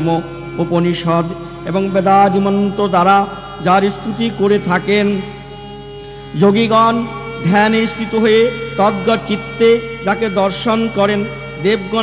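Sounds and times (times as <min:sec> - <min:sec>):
man chanting: 0:00.0 - 0:05.5, 0:06.3 - 0:12.0
faint steady drone: 0:00.0 - 0:12.0.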